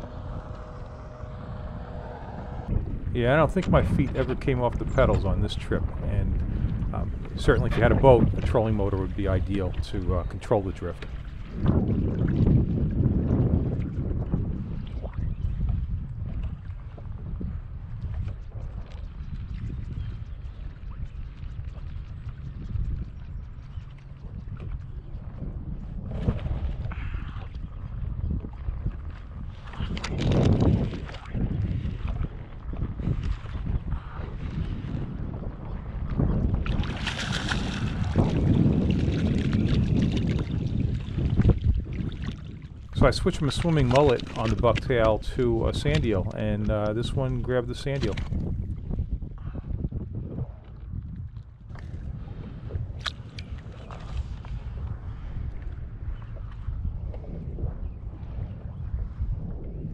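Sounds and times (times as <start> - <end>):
rushes of water: 0.0 - 59.9
wind buffeting microphone: 0.0 - 59.9
waves slapping plastic hull: 2.7 - 17.2, 23.9 - 49.1
fish splashing: 36.7 - 40.4.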